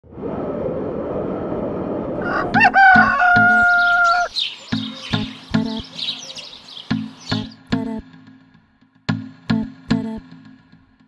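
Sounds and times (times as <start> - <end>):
rushing noise: 0.0 - 4.8
rooster crowing: 2.2 - 5.1.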